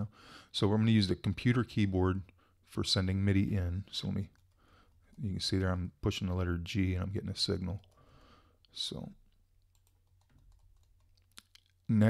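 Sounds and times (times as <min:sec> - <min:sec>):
man speaking: 0:00.0 - 0:04.4, 0:05.2 - 0:07.8, 0:08.8 - 0:09.2
keyboard and mouse clicks: 0:09.2 - 0:11.8.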